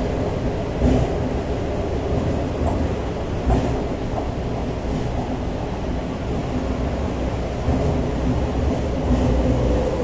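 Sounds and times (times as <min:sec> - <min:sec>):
subway wheels rumbling on track: 0:00.0 - 0:10.0.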